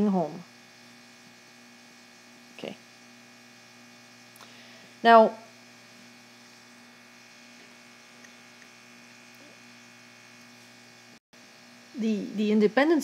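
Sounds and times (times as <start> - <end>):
faint electrical hum: 0.0 - 13.0.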